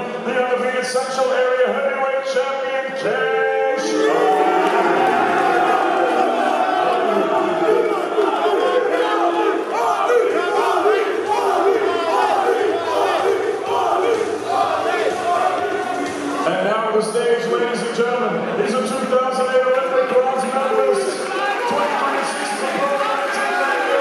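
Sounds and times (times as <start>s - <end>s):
large crowd shouting: 3.7s - 16.5s, 20.4s - 24.0s.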